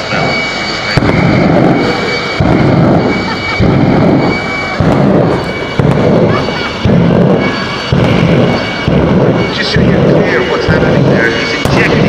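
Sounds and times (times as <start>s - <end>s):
jet engine whining: 0.0s - 12.0s
exhaust flame whoomps: 1.0s - 11.9s.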